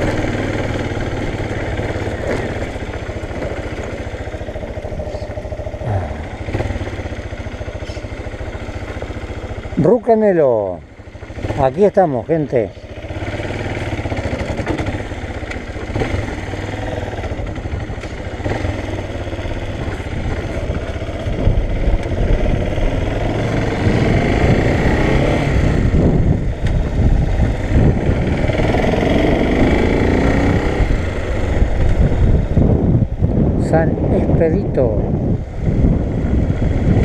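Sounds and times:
motorcycle engine running: 0.0s - 37.0s.

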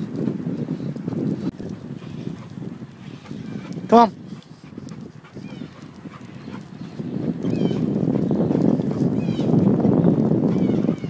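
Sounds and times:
dog paws on asphalt: 0.0s - 11.0s
wind and bicycle rolling: 0.0s - 11.0s.

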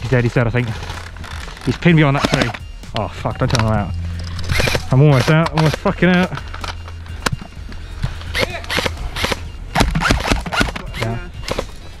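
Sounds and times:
low background hum: 0.0s - 12.0s
airsoft guns firing: 8.4s - 11.7s.

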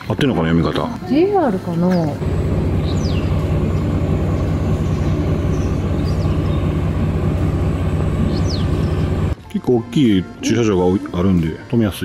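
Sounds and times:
vehicle engine idling: 1.3s - 9.4s
high descending chirp: 2.2s - 9.4s.

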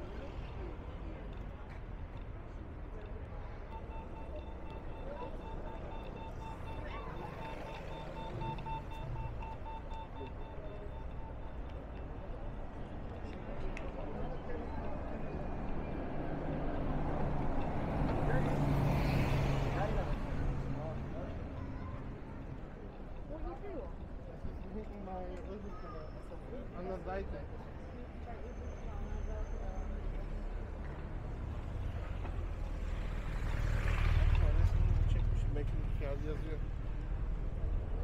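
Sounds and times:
vehicle engine hum: 0.0s - 25.9s, 28.9s - 38.0s
faint indistinct voices: 0.0s - 38.0s
traffic rumble: 0.0s - 38.0s.

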